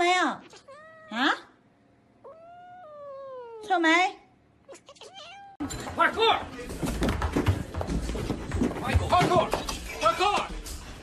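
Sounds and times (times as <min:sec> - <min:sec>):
cat meowing: 0:00.4 - 0:01.3, 0:02.2 - 0:03.7, 0:04.7 - 0:05.6.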